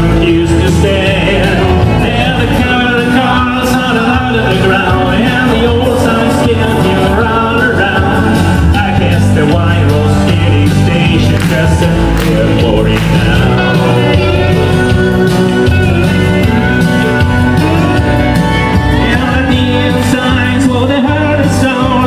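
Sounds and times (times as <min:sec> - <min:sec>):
acoustic guitar strumming: 0:00.0 - 0:22.0
bass and drums: 0:00.0 - 0:22.0.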